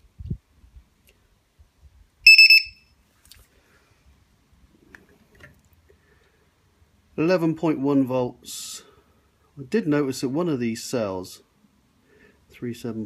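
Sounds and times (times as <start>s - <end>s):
high-pitched buzzer beeping: 2.3s - 2.8s.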